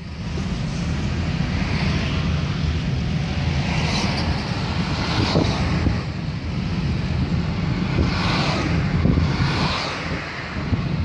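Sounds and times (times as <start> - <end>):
car road noise rumble: 0.0 - 11.0
wind and tyre hiss: 0.0 - 11.0.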